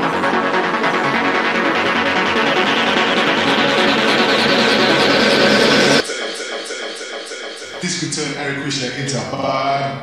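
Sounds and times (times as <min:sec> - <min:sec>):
rising noise sweep: 0:00.0 - 0:08.6
psytrance music: 0:00.0 - 0:09.6.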